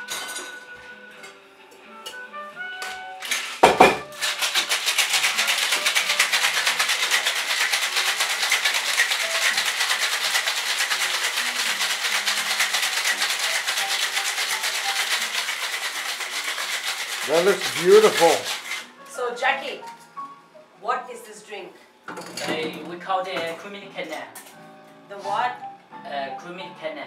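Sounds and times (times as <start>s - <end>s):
cocktail shaker shaking: 4.1s - 18.8s.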